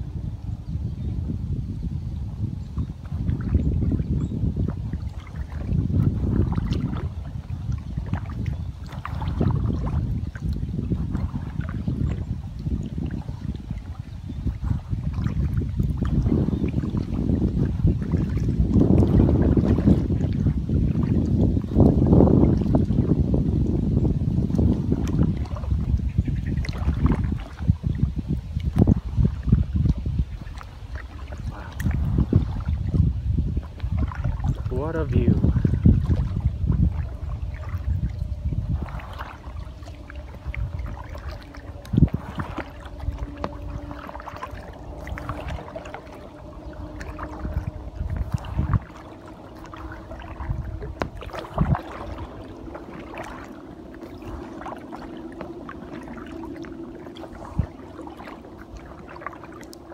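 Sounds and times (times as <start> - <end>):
wind rumbling on microphone: 0.0 - 59.9
kayak paddle splashing water: 2.9 - 59.9.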